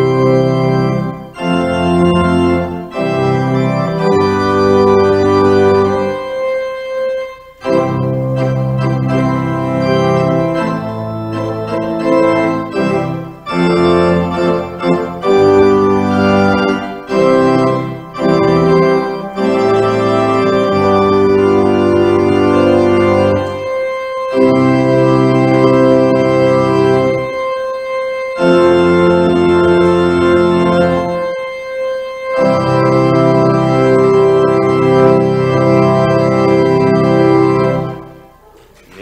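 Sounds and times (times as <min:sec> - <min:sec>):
organ playing sustained chords: 0:00.0 - 0:39.0.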